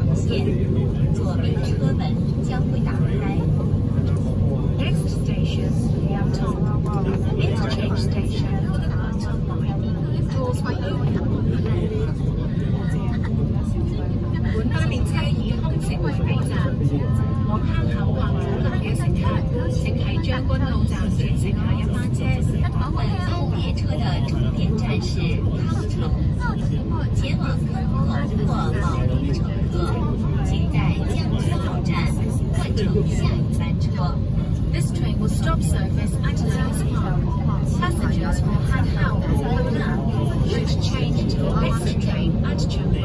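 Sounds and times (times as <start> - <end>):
passengers talking: 0.0 - 43.0.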